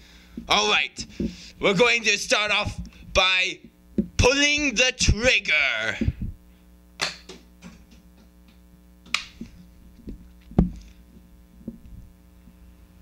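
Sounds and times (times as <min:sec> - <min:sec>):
electrical hum: 0:00.0 - 0:13.0
thump: 0:10.6 - 0:10.8.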